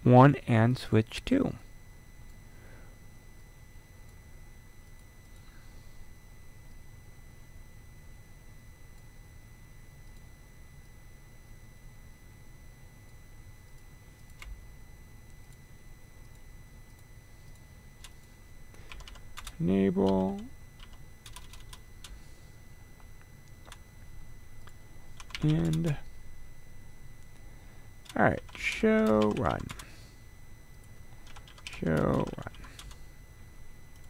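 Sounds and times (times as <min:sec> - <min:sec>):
low electrical hum: 0:00.0 - 0:34.0
thin high whine: 0:00.1 - 0:21.2, 0:21.8 - 0:34.0.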